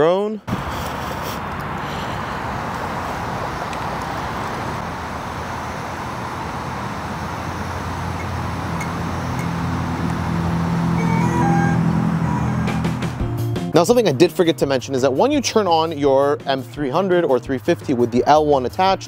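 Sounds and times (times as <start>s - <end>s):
cooling fans whirring: 0.5s - 13.2s
background music: 11.0s - 19.0s.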